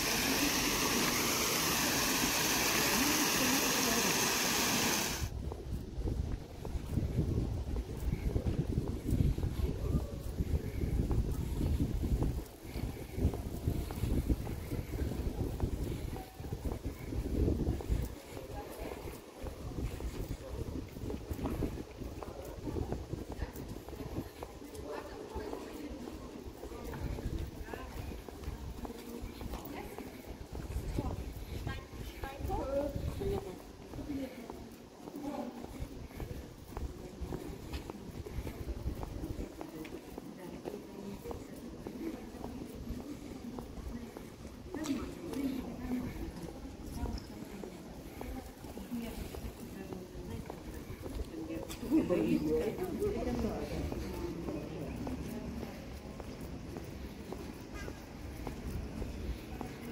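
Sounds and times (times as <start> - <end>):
footsteps: 0.0 - 59.9
passers-by talking: 0.0 - 59.9
wind rumble on microphone: 5.3 - 34.6, 35.6 - 39.9.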